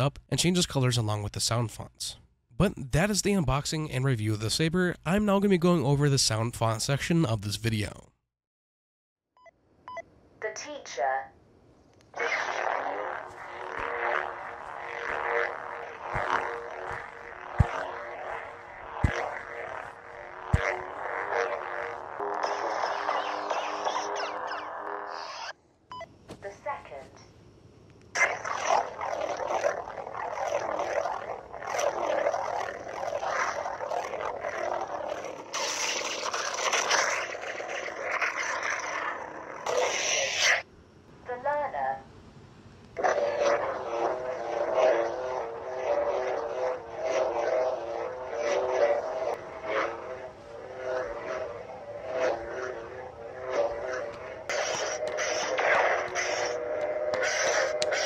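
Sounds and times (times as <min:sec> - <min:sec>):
lightsaber blade hum: 0:12.2 - 0:25.5, 0:28.2 - 0:40.6, 0:43.0 - 0:58.0
lightsaber swing sounds: 0:12.2 - 0:25.5, 0:28.2 - 0:40.6, 0:43.0 - 0:58.0.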